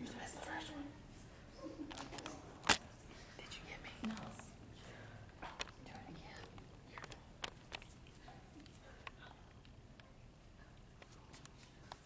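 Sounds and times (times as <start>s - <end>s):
hushed whispering voices: 0.0s - 1.8s, 3.2s - 7.3s.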